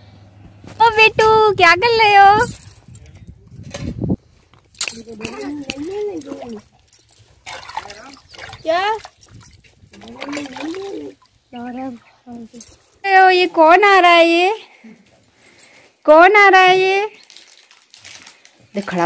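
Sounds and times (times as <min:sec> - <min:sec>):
water splashing in steel basin: 0:04.9 - 0:12.1.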